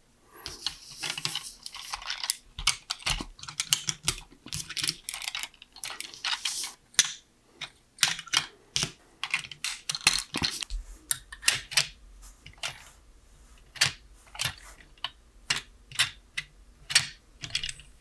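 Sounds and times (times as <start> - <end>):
plastic bricks clicking and clattering: 0.5 - 12.8, 13.7 - 18.0.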